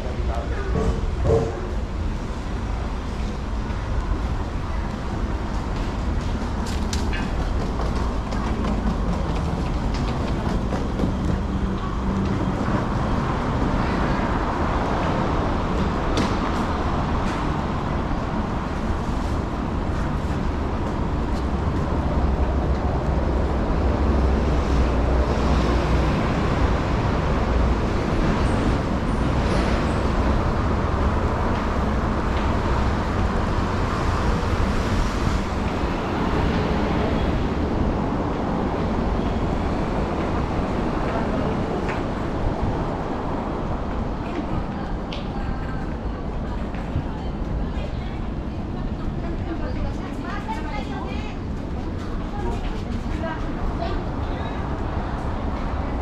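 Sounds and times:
railway station noise: 0.0s - 56.0s
road traffic: 0.0s - 56.0s.

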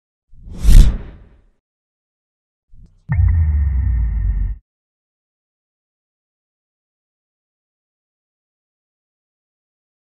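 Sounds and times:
whoosh with deep boom: 0.4s - 1.3s.

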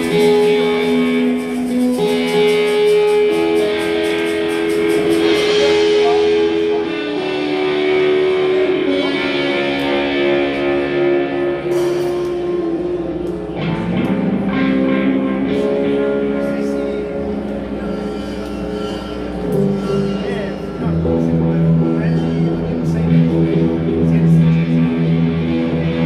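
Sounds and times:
drum kit: 0.0s - 9.9s, 11.7s - 15.8s
cymbals ticking: 0.0s - 23.6s
electric guitar long held notes: 0.0s - 26.0s.

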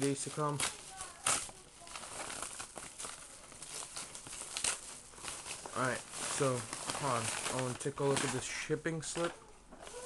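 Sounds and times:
mailer bag crinkling and rustling: 0.0s - 10.0s.

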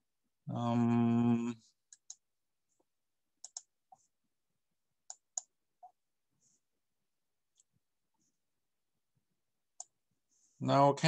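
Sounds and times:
computer mouse clicking: 1.9s - 2.2s, 3.4s - 3.7s, 5.0s - 6.0s.

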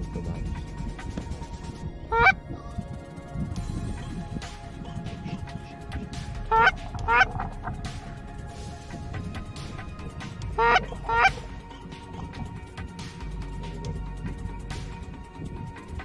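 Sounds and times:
goose call honks: 2.1s - 2.4s, 10.6s - 11.4s.

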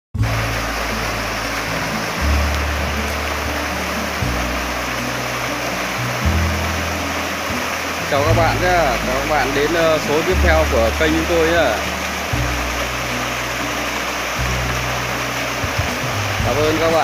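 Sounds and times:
background music with low bass: 0.2s - 17.0s
water rushing over rocks: 0.2s - 17.0s.

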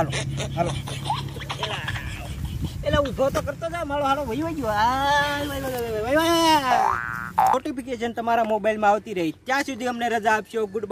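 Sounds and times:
comic boing sound effect: 6.8s - 7.6s.

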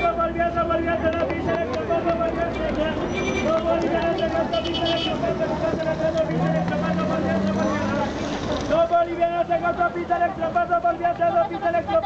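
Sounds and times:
many voices talking: 0.0s - 12.0s
vehicle engine rising in pitch: 6.0s - 8.4s.

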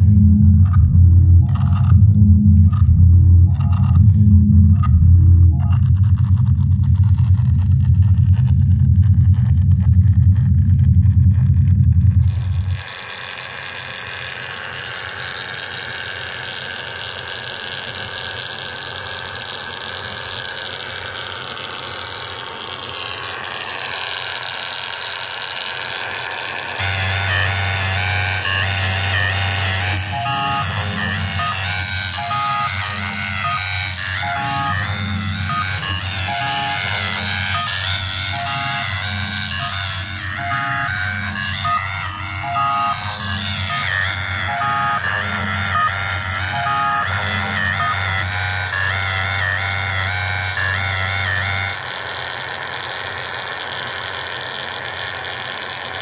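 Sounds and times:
sequenced pattern of short notes: 0.0s - 6.4s, 28.6s - 48.0s
deep bass note: 0.0s - 12.8s, 26.8s - 48.4s
sustained synth tones: 0.0s - 13.8s, 20.0s - 53.3s.

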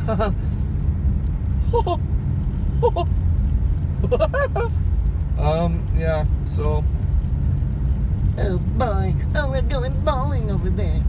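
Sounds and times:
person laughing: 0.0s - 0.4s, 1.7s - 2.0s, 2.8s - 3.1s, 4.0s - 4.8s
car driving on snowy road: 0.0s - 11.0s.

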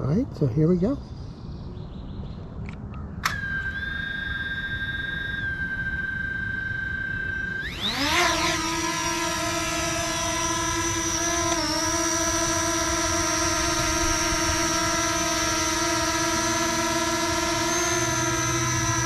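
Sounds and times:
drone motors whining: 3.2s - 19.0s.

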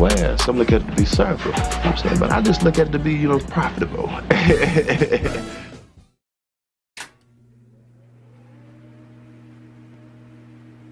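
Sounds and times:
low steady hum with held tones: 7.2s - 10.9s.

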